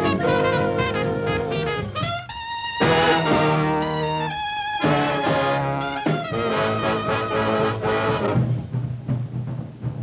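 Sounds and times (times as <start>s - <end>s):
horn section chord: 0.0s - 8.5s
drum kit tom and bass drum strokes: 0.0s - 10.0s.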